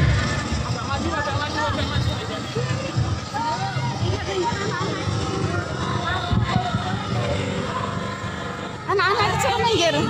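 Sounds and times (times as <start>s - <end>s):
crowd chatter: 0.0s - 10.0s
music: 0.0s - 10.0s
women singing and chanting: 3.0s - 10.0s.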